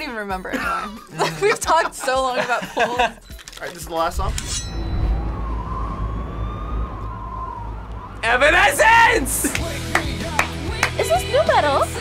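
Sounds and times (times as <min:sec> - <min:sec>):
distant siren rising and falling: 0:04.6 - 0:09.5
low city rumble: 0:04.7 - 0:09.6.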